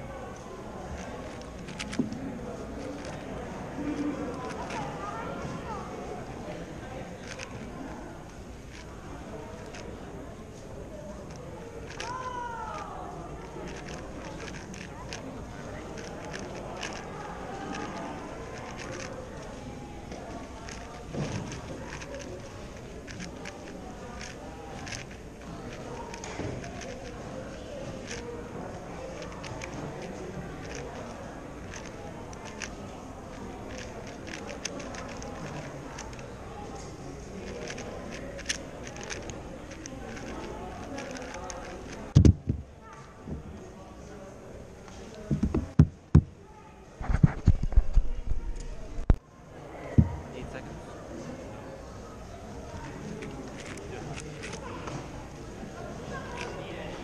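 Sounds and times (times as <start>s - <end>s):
people talking: 0.0s - 57.0s
plastic puzzle cube clicking: 0.9s - 5.0s, 7.2s - 8.9s, 9.5s - 10.0s, 11.3s - 12.8s, 13.4s - 19.5s, 20.1s - 36.3s, 37.4s - 42.6s, 53.2s - 54.6s.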